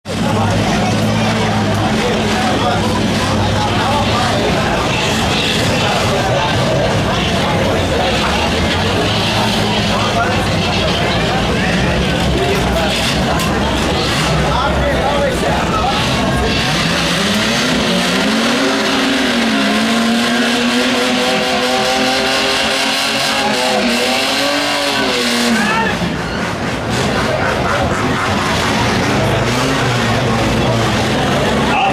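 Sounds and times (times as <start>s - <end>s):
car engines rumbling: 0.0s - 31.9s
voices: 0.0s - 31.9s.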